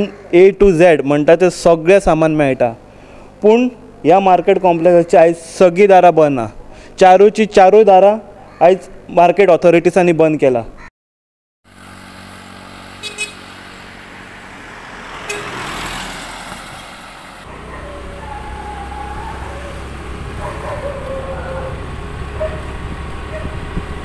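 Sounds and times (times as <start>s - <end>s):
car driving past: 11.7s - 24.0s
low rumble of vehicles: 11.7s - 24.0s
car horn toot: 13.0s - 13.5s, 15.2s - 15.6s.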